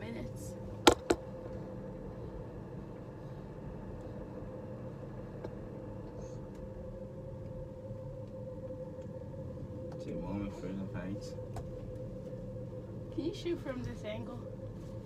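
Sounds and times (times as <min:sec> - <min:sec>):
gondola cabin hum and rumble: 0:00.0 - 0:15.0.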